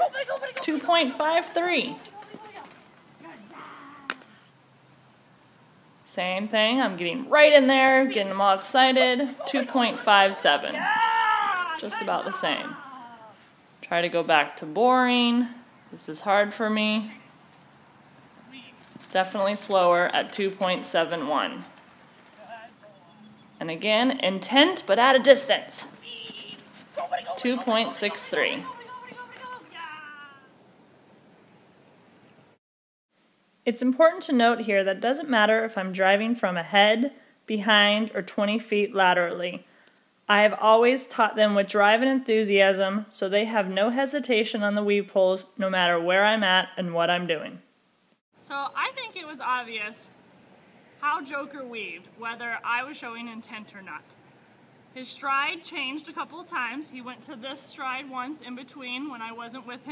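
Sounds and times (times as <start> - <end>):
low background noise: 0.0 - 59.9.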